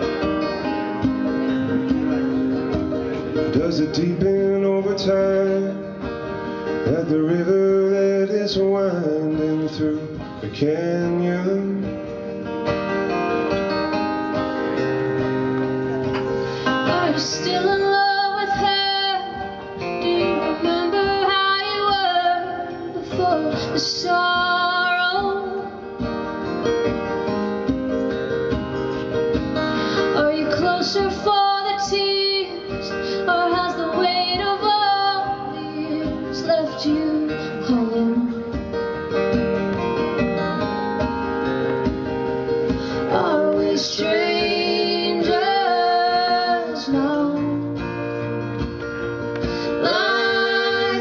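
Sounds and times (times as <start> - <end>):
acoustic guitars strumming: 0.0 - 51.0
woman and man singing: 3.5 - 6.1, 16.6 - 26.0, 30.0 - 38.6, 42.9 - 47.9, 49.5 - 51.0.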